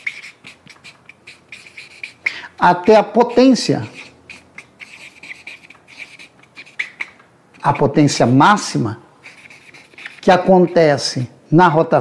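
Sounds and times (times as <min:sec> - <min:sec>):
marker squeaking on paper: 0:00.0 - 0:11.4.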